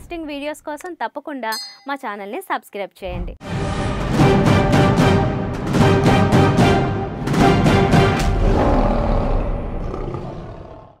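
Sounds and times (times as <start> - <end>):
lion roar: 8.2 - 11.0.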